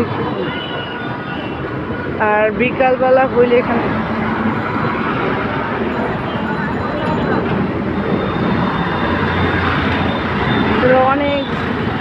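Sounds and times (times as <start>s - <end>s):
road traffic: 0.0s - 12.0s.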